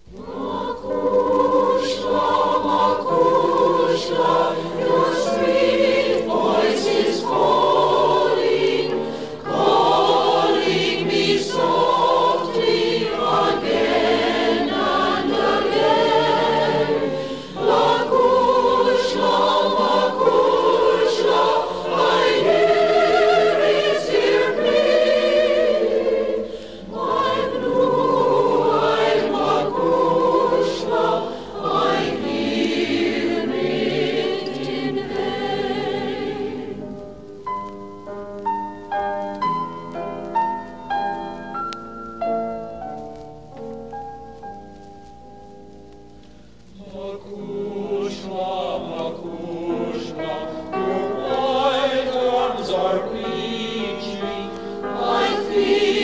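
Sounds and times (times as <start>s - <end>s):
choir singing in harmony: 0.0s - 37.3s, 46.7s - 56.0s.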